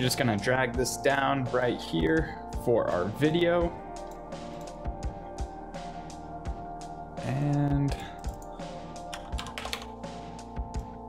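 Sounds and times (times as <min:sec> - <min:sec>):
background music with held tones: 0:00.0 - 0:11.0
computer keyboard clicks: 0:09.1 - 0:09.9.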